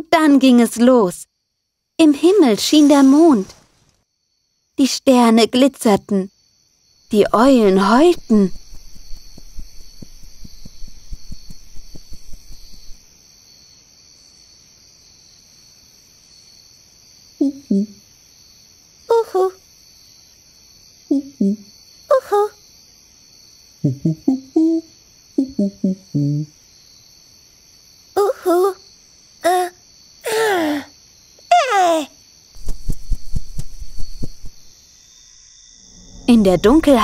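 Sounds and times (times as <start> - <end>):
crickets chirping: 0.0 - 37.0
soft low thumps: 7.9 - 13.0, 32.6 - 34.7.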